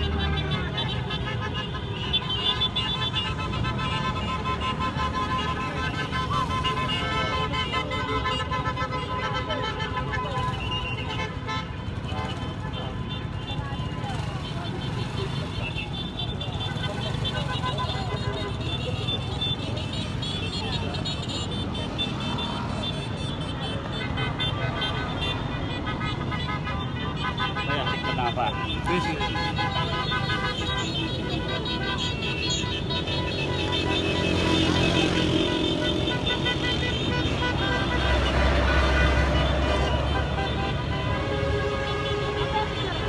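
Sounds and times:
horns tooting: 0.0 - 43.0
motorcycles and cars passing: 0.0 - 43.0
people's voices: 11.8 - 41.0.

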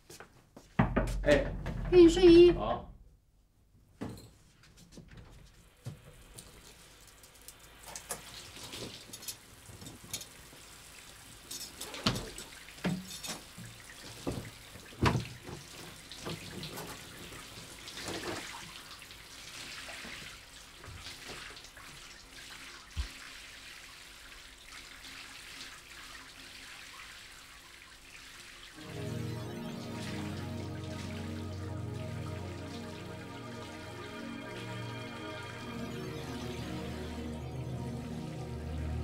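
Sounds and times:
shower water running: 5.5 - 39.0
soft background music: 28.8 - 39.0.

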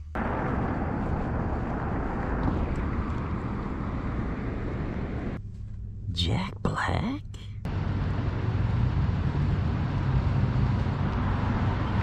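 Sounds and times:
wind and traffic noise: 0.0 - 6.1, 7.6 - 12.0.

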